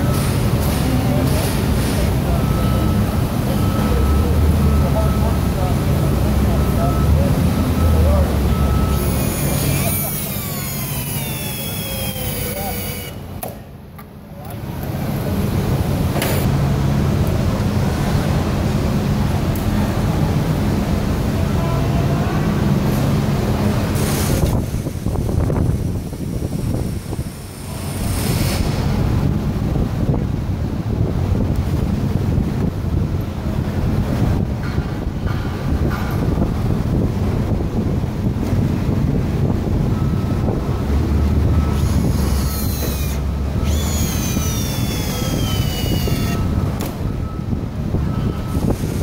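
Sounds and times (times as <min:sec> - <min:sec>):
warehouse background rumble: 0:00.0 - 0:49.0.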